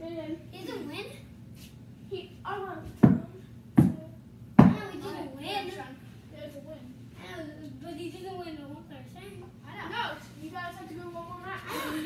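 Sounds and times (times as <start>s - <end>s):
children's voices: 2.1s - 12.0s
heavy thumps on floor: 3.0s - 4.0s, 4.6s - 4.9s.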